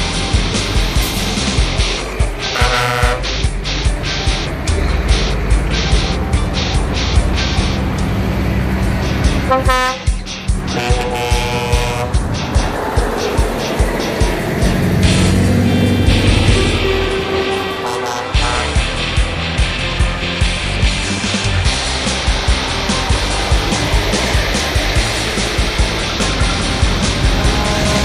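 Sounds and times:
loud music with steady beat: 0.0 - 28.0
truck engines running: 0.0 - 28.0
truck air horns tooting: 2.2 - 3.6, 5.2 - 12.3, 14.4 - 19.4, 26.0 - 28.0.

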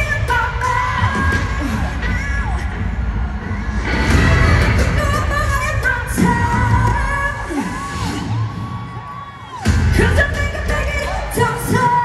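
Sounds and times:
heavy bass beat: 0.0 - 8.6, 9.6 - 12.0
live pop song over a pa: 0.0 - 12.0.

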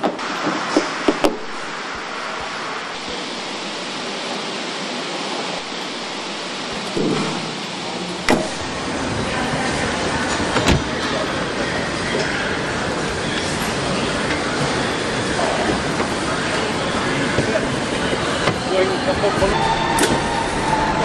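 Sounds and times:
factory machine noise: 0.0 - 21.0.

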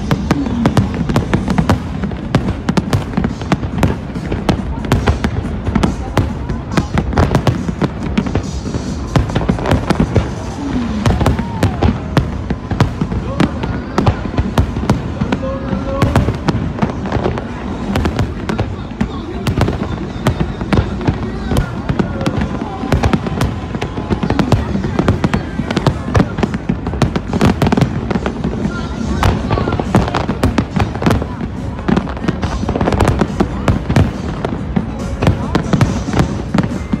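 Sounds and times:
fireworks bangs: 0.0 - 37.0.

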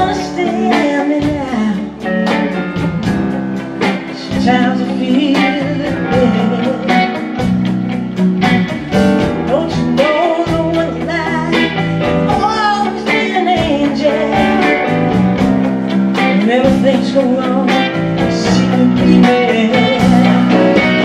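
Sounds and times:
person singing: 0.0 - 2.8, 3.8 - 7.6, 9.2 - 21.0
live blues-rock band: 0.0 - 21.0.

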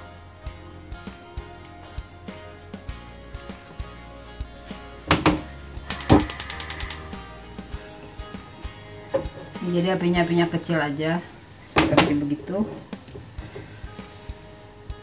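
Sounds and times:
background music: 0.0 - 15.0
knocks: 5.1 - 6.9
gas hob igniter clicking: 5.1 - 7.2, 9.1 - 9.7, 11.7 - 13.8.

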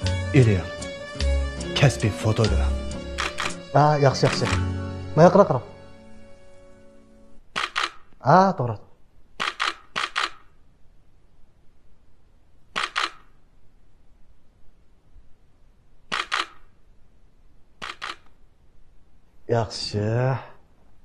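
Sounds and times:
camera shutter clicking: 3.2 - 3.6, 7.5 - 8.1, 9.4 - 10.5, 12.7 - 13.4, 16.1 - 16.7, 17.8 - 18.4.

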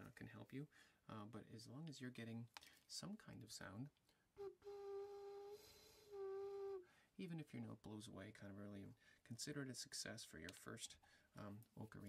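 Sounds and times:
clay ocarina notes: 4.4 - 6.9.

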